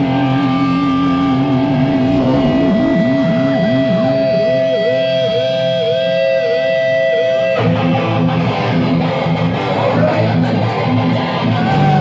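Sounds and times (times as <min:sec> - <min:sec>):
live heavy metal band: 0:00.0 - 0:12.0
sustained electric guitar note: 0:00.0 - 0:12.0.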